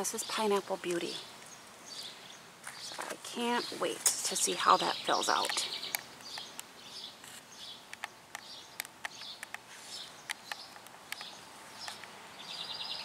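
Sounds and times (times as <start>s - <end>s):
songbirds chirping faintly: 0.0s - 13.0s
sharp ticks: 7.9s - 12.2s.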